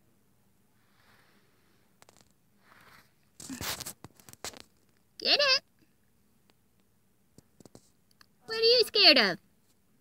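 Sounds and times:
light clicks and scrapes: 1.0 - 5.1, 7.4 - 8.3.

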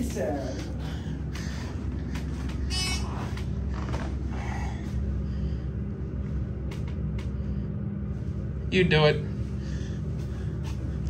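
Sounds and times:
elevator hum and rumble: 0.0 - 11.0.

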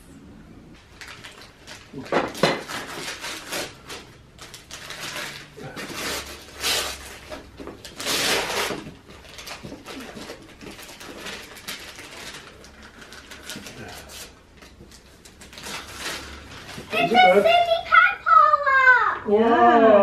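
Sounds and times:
wrapping paper ripping: 0.9 - 17.8.

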